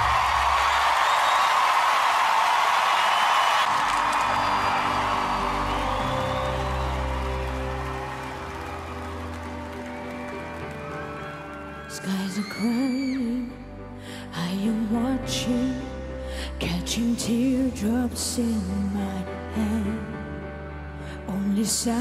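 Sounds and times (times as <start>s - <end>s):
studio audience applauding and cheering: 0.0s - 13.7s.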